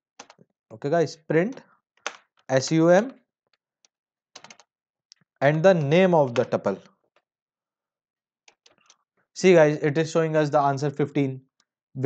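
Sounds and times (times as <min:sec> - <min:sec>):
computer keyboard keystrokes: 0:04.4 - 0:04.7.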